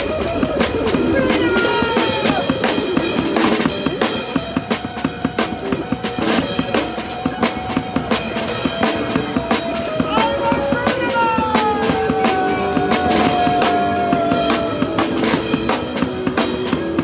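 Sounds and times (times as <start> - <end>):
snare drum and cymbals: 0.0 - 17.0.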